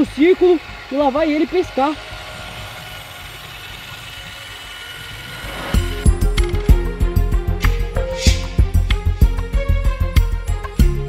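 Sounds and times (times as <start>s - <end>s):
small electric motor running: 0.0s - 9.5s
music with heavy beat: 5.8s - 11.0s.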